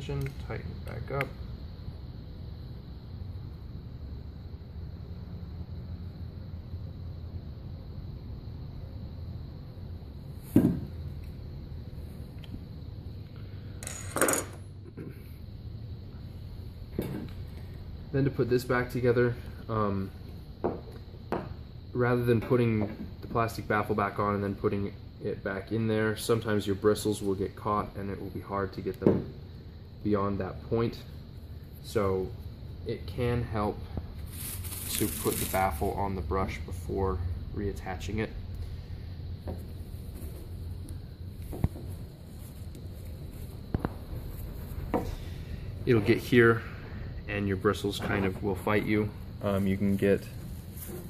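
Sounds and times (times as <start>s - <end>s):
low steady hum: 0.0s - 51.0s.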